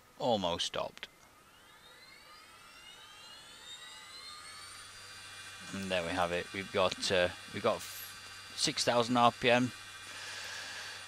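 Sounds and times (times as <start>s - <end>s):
electric motor whine rising: 0.6s - 11.0s.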